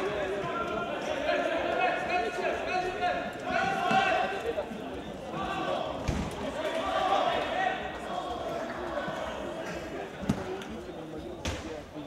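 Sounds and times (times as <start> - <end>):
shouting and chatter: 0.0 - 12.0.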